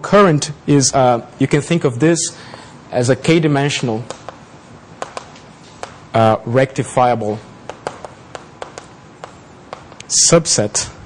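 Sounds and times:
chalk tapping on blackboard: 4.0 - 4.4, 5.0 - 6.0, 7.6 - 10.9.

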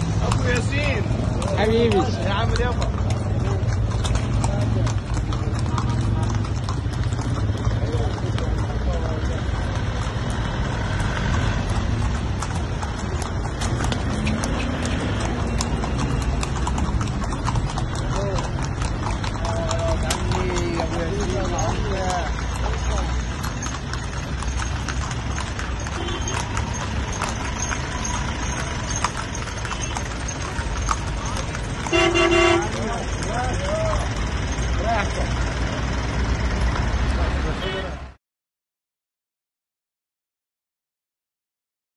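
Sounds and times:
horse hooves clip-clopping on road: 0.0 - 38.2
street noise: 0.0 - 38.2
voices: 0.0 - 38.2
vehicle horn toot: 26.0 - 26.4, 31.9 - 32.8.

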